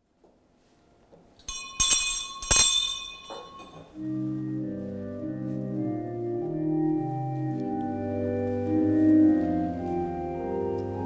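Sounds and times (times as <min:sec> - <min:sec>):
small metal bell ringing: 0:01.4 - 0:04.0.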